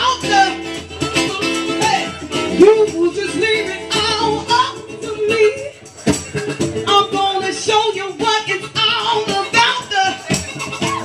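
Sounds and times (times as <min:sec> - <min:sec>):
person singing: 0:00.0 - 0:05.8, 0:06.8 - 0:11.0
live band playing: 0:00.0 - 0:11.0.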